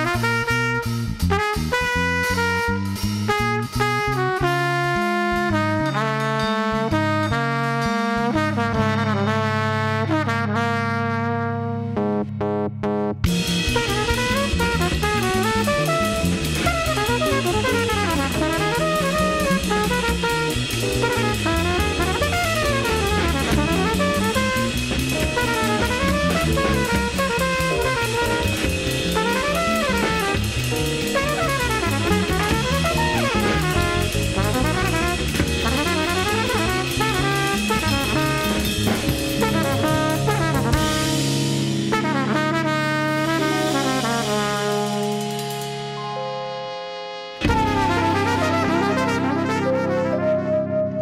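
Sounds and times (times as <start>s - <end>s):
drum kit: 0.0s - 10.9s, 13.2s - 46.4s, 47.3s - 50.3s
trumpet: 0.0s - 12.3s, 13.3s - 51.0s
walking bass: 0.0s - 45.9s, 47.4s - 51.0s
electric piano: 2.4s - 51.0s.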